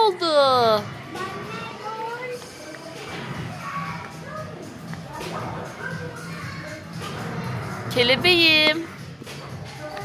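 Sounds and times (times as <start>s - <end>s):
faint children's voices: 0.0s - 8.0s, 9.1s - 10.0s
music playing: 0.0s - 10.0s.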